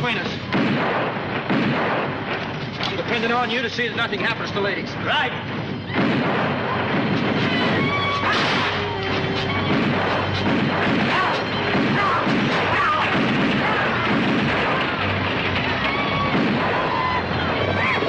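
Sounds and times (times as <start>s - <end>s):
gunfire: 0.0s - 3.3s, 5.4s - 18.0s
film battle music: 0.0s - 18.0s
crashes: 5.4s - 18.0s.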